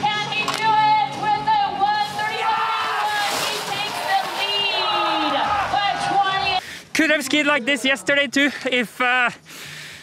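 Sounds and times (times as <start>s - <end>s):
people shouting: 2.0s - 6.6s.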